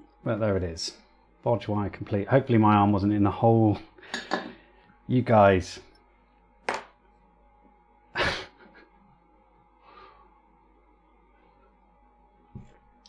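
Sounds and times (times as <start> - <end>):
man laughing breathily: 8.2 - 9.0
faint breath: 9.8 - 10.4.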